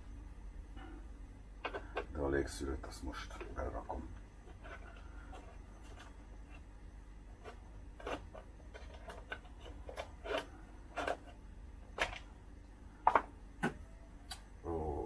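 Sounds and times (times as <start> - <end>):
low steady hum: 0.0 - 15.0.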